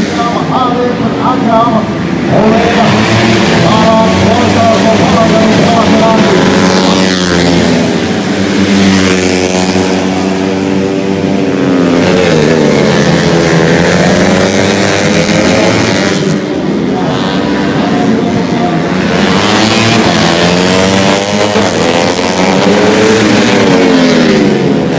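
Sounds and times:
motorcycle engines at high revs: 0:00.0 - 0:24.9.

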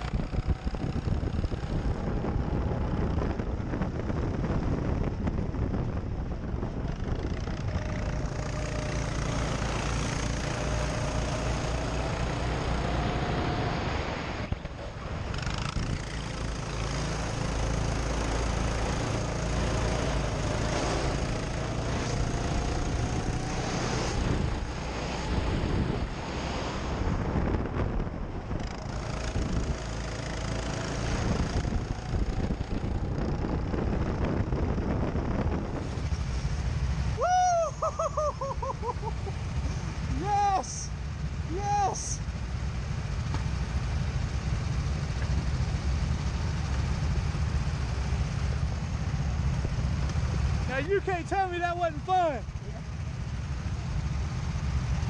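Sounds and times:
wind rush on microphone: 0:00.0 - 0:51.2
go-kart motor accelerating: 0:00.0 - 0:55.0.

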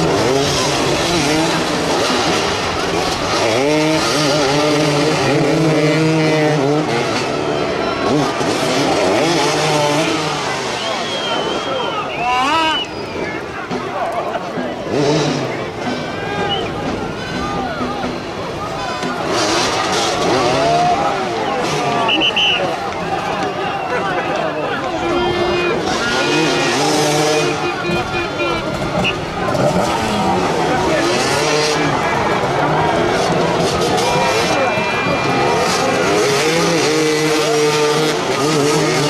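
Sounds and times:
crowd chatter: 0:00.0 - 0:39.0
motorcycle engines revving: 0:00.0 - 0:39.0.

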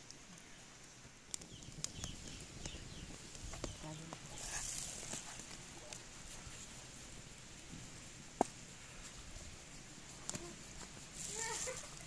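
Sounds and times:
soft rustle of stalks: 0:00.0 - 0:12.0.

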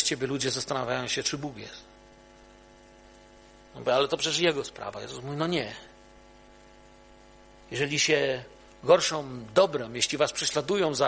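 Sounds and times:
faint electrical hum: 0:00.0 - 0:11.0
man speaking: 0:03.8 - 0:05.9, 0:07.7 - 0:11.0.

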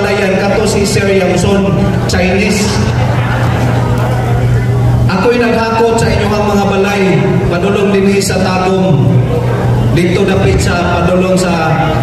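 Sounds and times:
man saying uhh over a loudspeaker: 0:00.0 - 0:03.1, 0:05.1 - 0:12.0.

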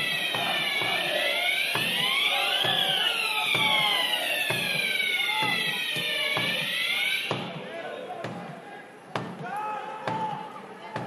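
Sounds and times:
drum beaten in a steady beat: 0:00.0 - 0:08.6
supporters calling or chanting: 0:00.0 - 0:11.0.

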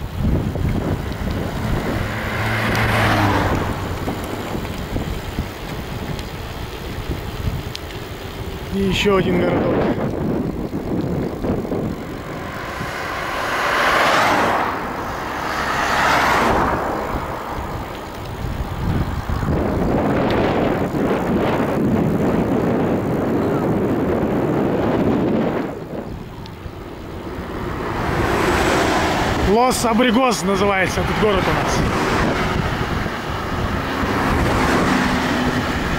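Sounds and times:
traffic passing: 0:00.0 - 0:35.9
wind and road noise on microphone: 0:00.0 - 0:35.9.

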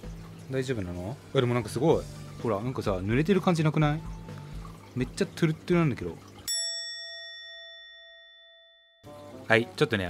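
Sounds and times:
bell-like chime: 0:06.5 - 0:09.2.

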